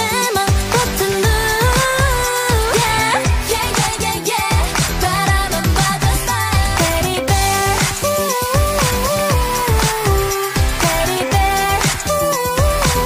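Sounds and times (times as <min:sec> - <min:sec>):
deep kick drums: 0:00.5 - 0:07.6.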